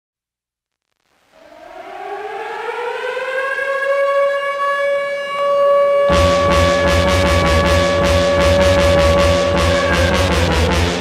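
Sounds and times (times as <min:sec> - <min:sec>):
siren wail: 0:01.4 - 0:11.0.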